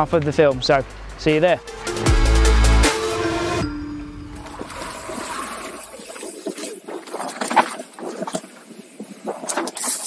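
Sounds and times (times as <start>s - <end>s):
deep musical hit with ringing: 1.6s - 4.9s.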